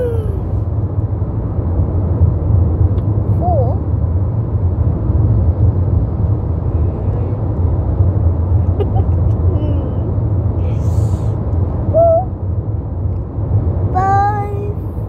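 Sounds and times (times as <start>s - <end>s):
child's voice: 0.0s - 0.6s, 3.3s - 3.9s, 9.4s - 11.3s, 13.9s - 14.9s
car cabin rumble: 0.0s - 10.6s.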